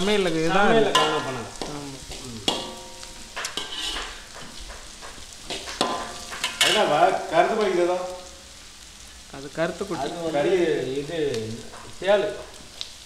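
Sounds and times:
vegetables sizzling in oil: 0.0 - 13.0
ladle scraping a wok: 0.9 - 6.9.

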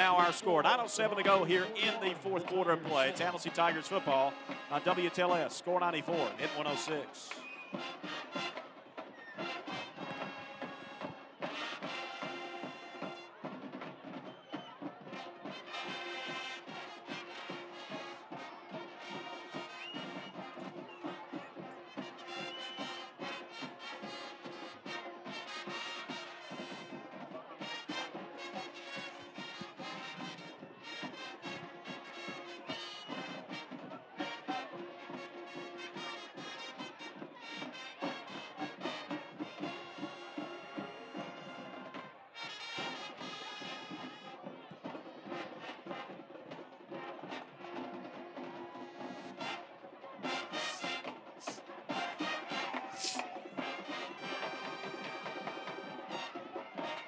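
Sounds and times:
drums beating: 0.0 - 18.4, 50.3 - 56.9
marching band playing brass tune: 0.0 - 57.0.

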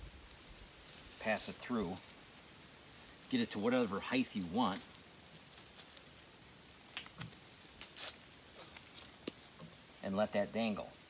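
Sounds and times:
strap scraping against bark: 0.0 - 10.1.

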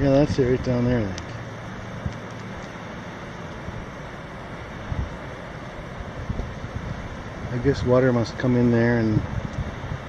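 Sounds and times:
distant surf: 0.0 - 10.0
wind buffeting microphone: 3.5 - 10.0.

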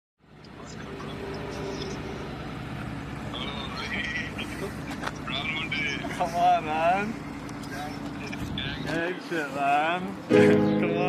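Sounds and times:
vehicle engine running: 0.2 - 11.0.

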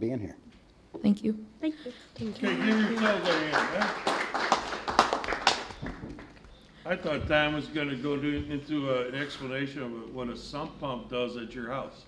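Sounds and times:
people clapping: 2.1 - 6.6.

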